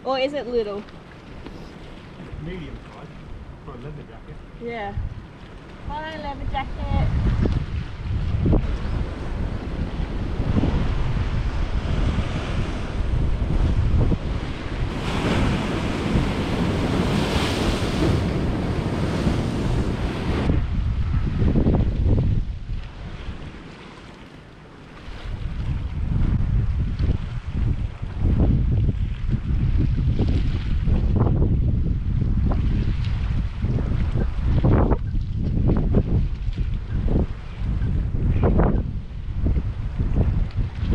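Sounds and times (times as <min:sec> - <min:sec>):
wind buffeting microphone: 0:00.0 - 0:23.8, 0:25.0 - 0:40.9
ocean waves breaking on rocks: 0:00.9 - 0:40.9.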